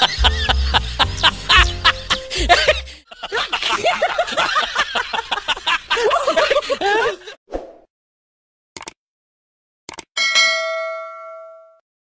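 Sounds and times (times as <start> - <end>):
bright bell ding: 10.2 - 11.8.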